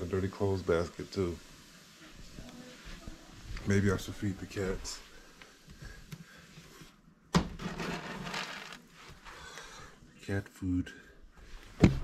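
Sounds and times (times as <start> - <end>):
rustling and scraping: 0.8 - 9.5.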